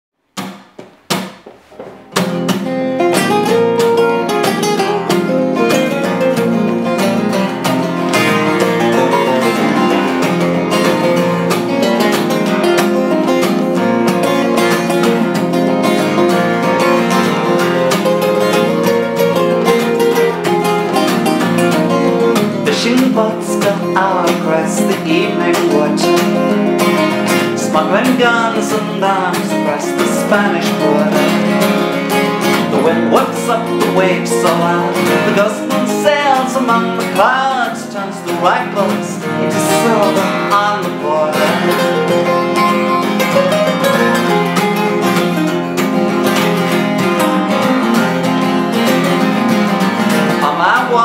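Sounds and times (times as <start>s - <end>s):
two acoustic guitars playing: 0.4s - 51.0s.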